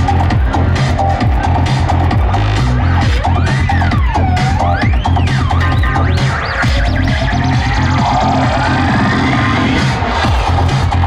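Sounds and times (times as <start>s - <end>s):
electronic dance music: 0.0s - 11.0s
heavy bass beat: 0.0s - 11.0s.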